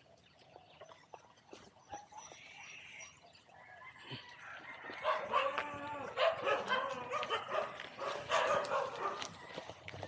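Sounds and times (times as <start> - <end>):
dog barking: 5.0 - 9.3.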